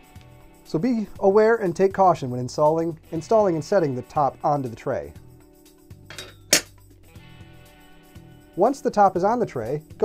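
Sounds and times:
metal frame clink: 6.0s - 6.8s.

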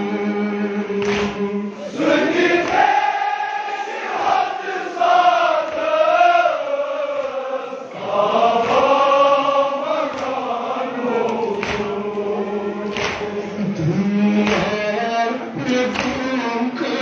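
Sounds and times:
men chanting a lament: 1.2s - 17.0s.

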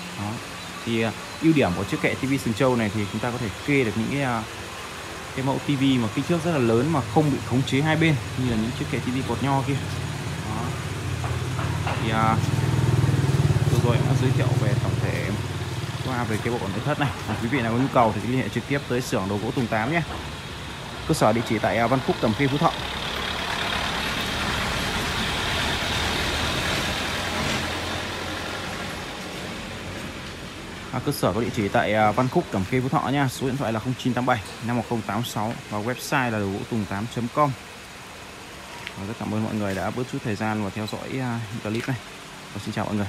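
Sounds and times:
vehicle engine passing: 1.6s - 33.5s.

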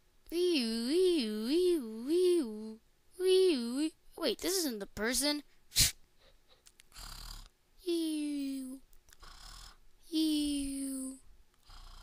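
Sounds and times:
high falling wee voice: 0.3s - 5.4s, 7.8s - 8.8s, 10.1s - 11.2s
person imitating snoring: 6.9s - 7.5s, 9.2s - 9.8s, 11.6s - 12.0s.

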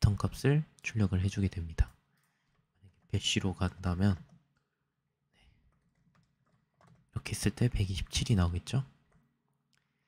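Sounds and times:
faint keyboard typing: 1.8s - 8.3s, 8.9s - 10.0s.

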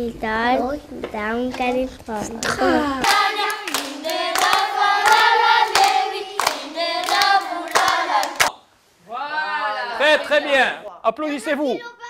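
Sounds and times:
children singing in unison: 3.0s - 8.5s
hands clapping in rhythm: 3.0s - 8.6s.

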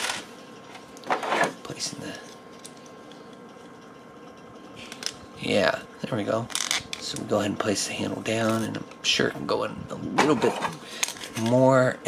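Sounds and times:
thin steady high hum: 0.0s - 12.0s.

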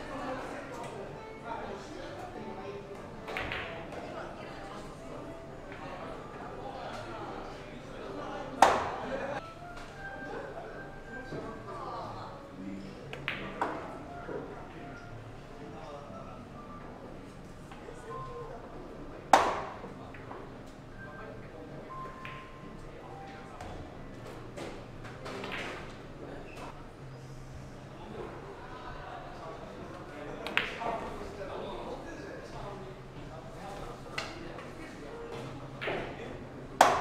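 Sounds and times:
billiard balls colliding: 36.8s - 37.0s.

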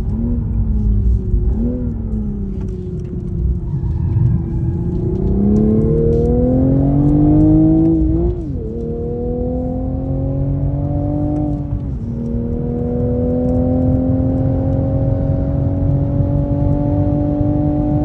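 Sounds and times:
car engine accelerating hard: 0.0s - 18.0s.

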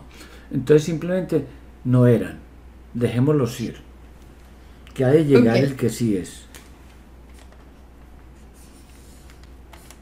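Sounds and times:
faint rustling and scratching: 6.4s - 10.0s.

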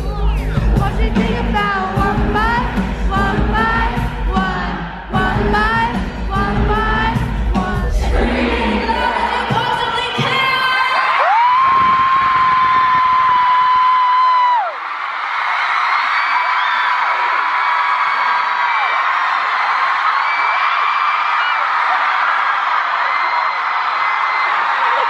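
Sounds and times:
amplified pop song: 0.0s - 15.0s
crowd cheering and screaming: 7.1s - 25.0s.

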